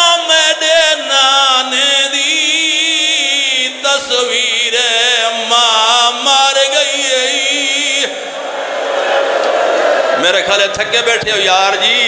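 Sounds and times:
man chanting: 0.0 - 8.2, 10.2 - 12.0.

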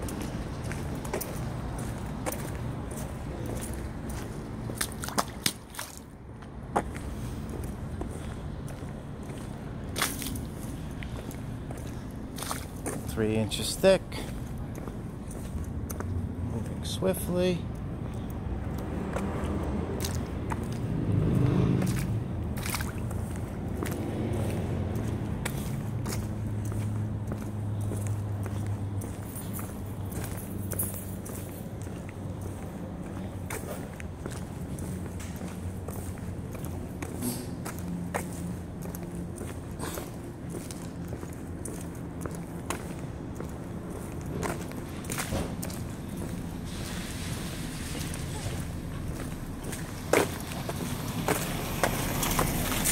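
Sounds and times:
footsteps on pavement: 0.0 - 52.9.

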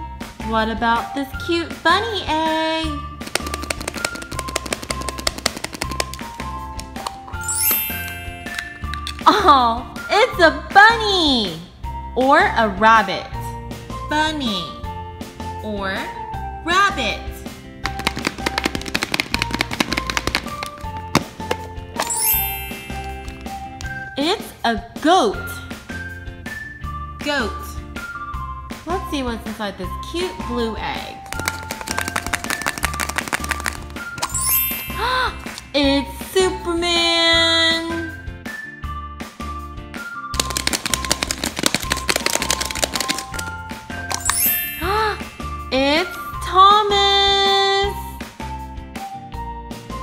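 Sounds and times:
upbeat background music: 0.0 - 50.0
plastic egg rattling with toy inside: 3.2 - 9.3, 17.8 - 23.6, 31.2 - 35.6, 40.4 - 44.8.

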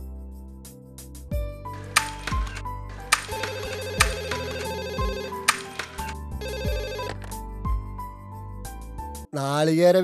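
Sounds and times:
phone ringtone trill: 3.0 - 7.3.

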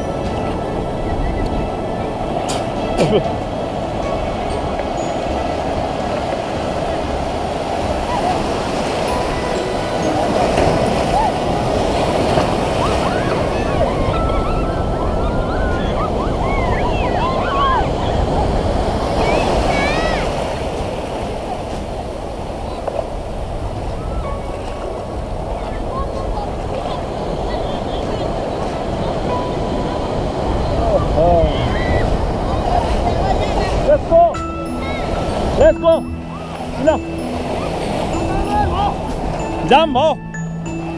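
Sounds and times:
surf washing through shallow water: 0.0 - 40.9
people shouting in water: 10.9 - 20.7, 31.0 - 33.8.

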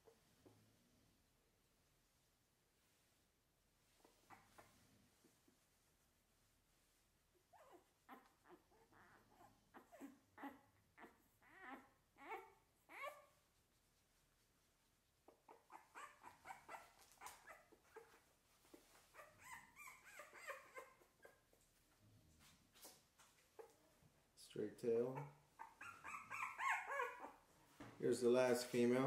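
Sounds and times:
puppy whimpering in high squeaks: 7.5 - 13.3, 15.5 - 18.2, 19.1 - 21.4, 25.2 - 27.4.

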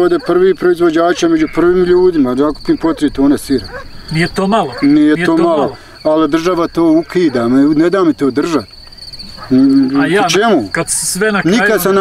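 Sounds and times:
man speaking: 0.0 - 8.7, 9.5 - 12.0
crickets chirping: 0.0 - 12.0.

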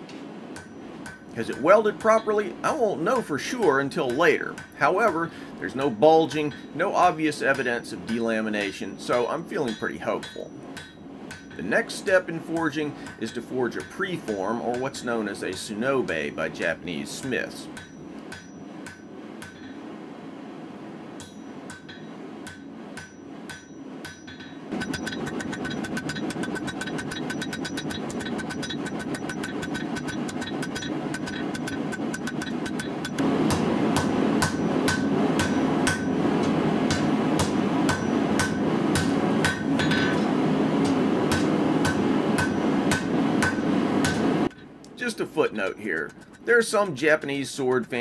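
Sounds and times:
steady background noise: 0.0 - 48.0
hammer striking steel on anvil: 0.6 - 19.9, 21.2 - 44.7.

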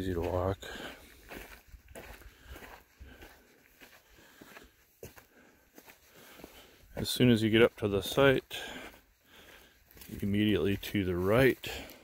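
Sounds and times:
footsteps on gravel and leaves: 0.0 - 12.0.

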